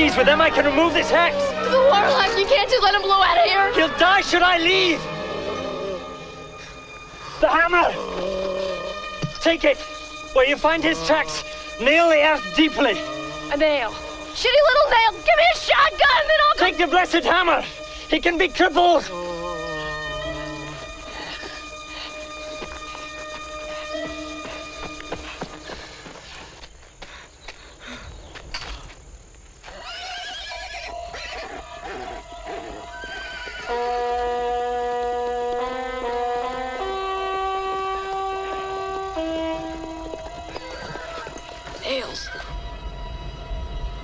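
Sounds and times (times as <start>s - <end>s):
orchestral score: 0.0s - 25.9s, 30.6s - 44.0s
horse whinnying: 5.0s - 6.4s, 7.8s - 9.0s, 19.1s - 20.8s, 29.6s - 34.0s, 40.5s - 41.4s.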